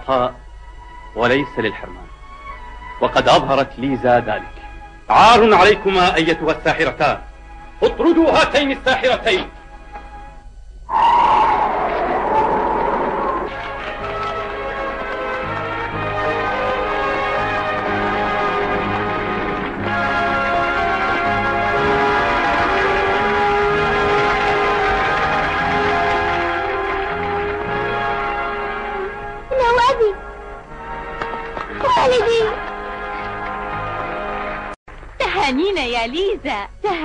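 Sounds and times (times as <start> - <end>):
rush of stormy wind: 10.9 - 13.5
soundtrack music: 10.9 - 34.8
church bells pealing: 13.5 - 29.5.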